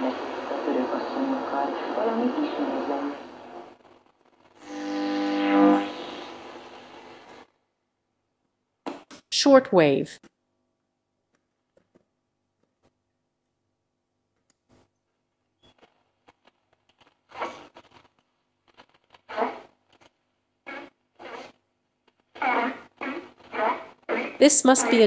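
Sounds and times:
distorted voice-like radio signal: 0:00.0 - 0:07.5, 0:22.4 - 0:25.0
radio tuning clicks and whistles: 0:00.0 - 0:07.5, 0:20.7 - 0:25.0.

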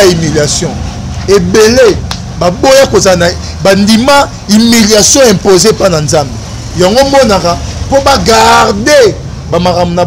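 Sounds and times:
man speaking animatedly: 0:00.0 - 0:10.0.

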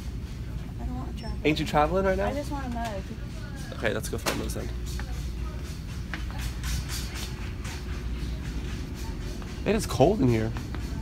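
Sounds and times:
indoor store background rumble: 0:00.0 - 0:11.0.

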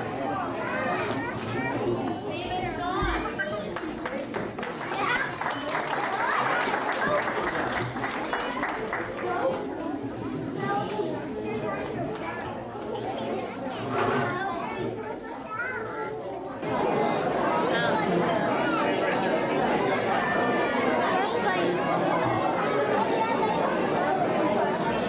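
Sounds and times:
chatter of many people: 0:00.0 - 0:25.0.

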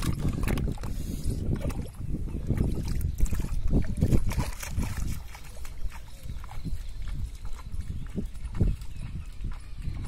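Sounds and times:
feet splashing through water and mud: 0:00.0 - 0:10.0.

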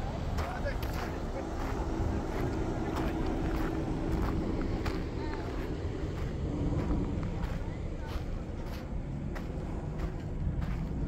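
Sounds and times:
faint voices: 0:00.0 - 0:11.0
low rumble and hum: 0:00.0 - 0:11.0
footsteps crunching on gravel: 0:00.3 - 0:11.0.

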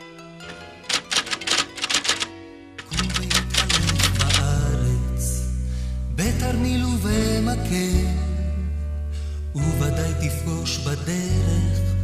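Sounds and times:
typewriter key clicks: 0:00.5 - 0:04.6.

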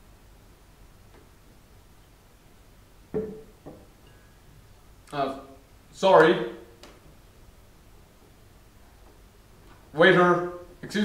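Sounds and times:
ceramic mug knocking on table: 0:03.1 - 0:03.9.

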